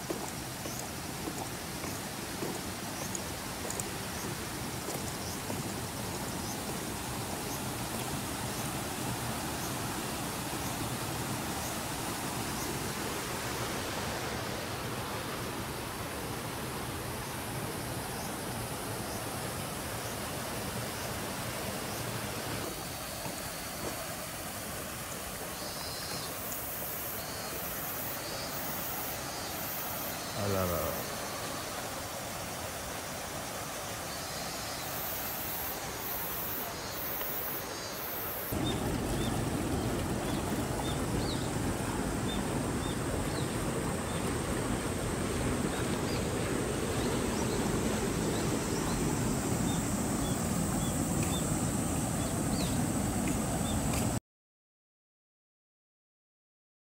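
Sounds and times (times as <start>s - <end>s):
floodwater rushing: 0.0s - 54.2s.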